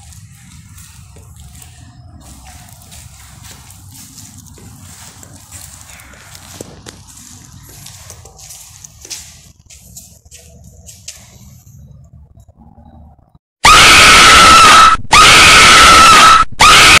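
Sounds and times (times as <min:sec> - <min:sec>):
loud distorted scream: 0:13.6 - 0:17.0.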